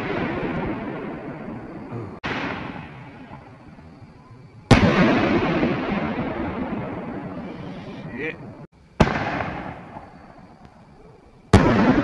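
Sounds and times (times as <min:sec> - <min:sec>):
firework bang with rumbling echo: 0:00.0 - 0:03.7, 0:04.7 - 0:10.2, 0:11.5 - 0:12.0.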